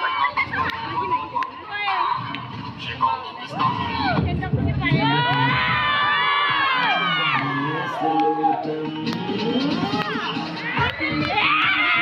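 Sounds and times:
crowd shouting and cheering: 0:00.0 - 0:12.0
dance music: 0:00.0 - 0:12.0.

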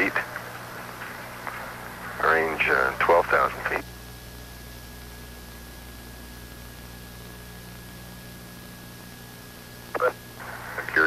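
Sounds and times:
low electrical hum: 0:00.0 - 0:11.0
man speaking: 0:02.2 - 0:03.8, 0:10.8 - 0:11.0.

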